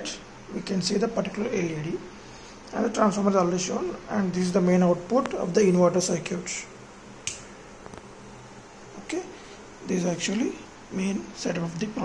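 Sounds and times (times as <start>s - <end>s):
faint low hum: 0.0s - 12.0s
rocker switch click: 7.2s - 8.0s.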